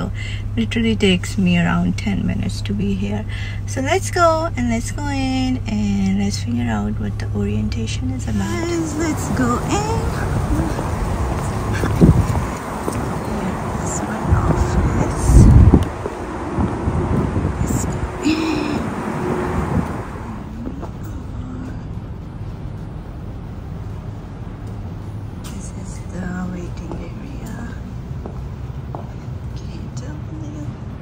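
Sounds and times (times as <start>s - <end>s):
passing traffic: 0.0s - 31.0s
rumbling knocks while walking: 28.1s - 29.2s.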